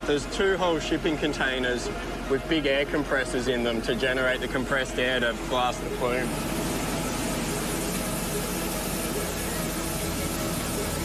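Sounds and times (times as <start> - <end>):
low machine hum: 0.0 - 11.0
spray cannon rushing hiss: 5.5 - 11.0.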